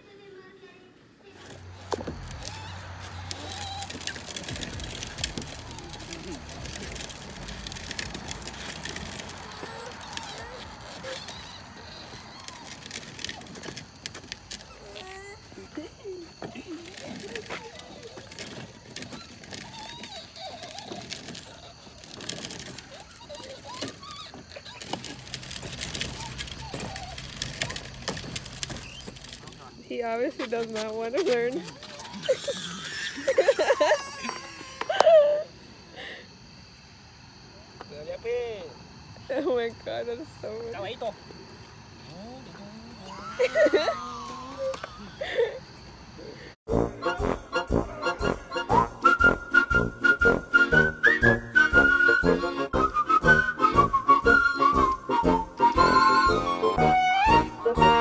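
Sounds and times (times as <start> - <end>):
faint voices: 0.0 - 32.8, 41.1 - 45.6
plastic wheels rattling on asphalt: 1.2 - 35.4, 37.8 - 46.5, 48.8 - 58.0.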